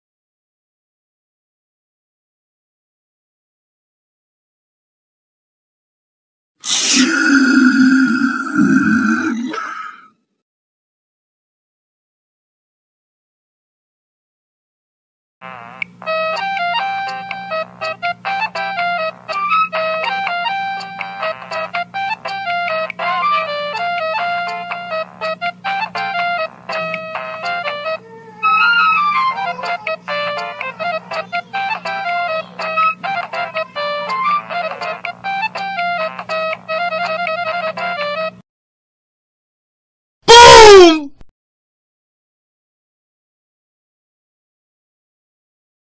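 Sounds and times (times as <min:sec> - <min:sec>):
person growling: 0:06.6 - 0:10.1, 0:40.3 - 0:41.1.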